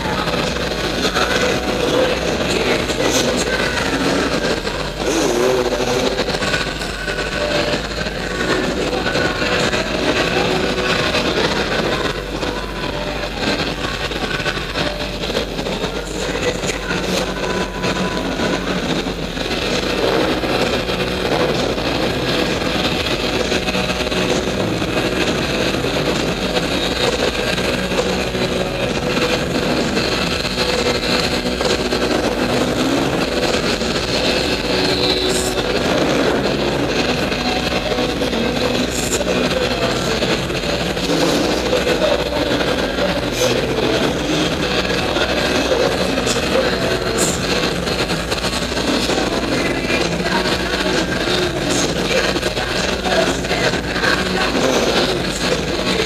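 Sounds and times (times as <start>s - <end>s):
dirt bikes revving: 0.0s - 56.0s.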